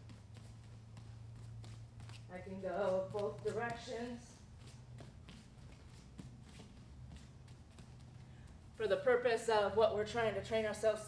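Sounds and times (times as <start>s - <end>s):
bare feet tapping on foam mats: 0.0s - 9.9s
steady low hum: 0.0s - 11.0s.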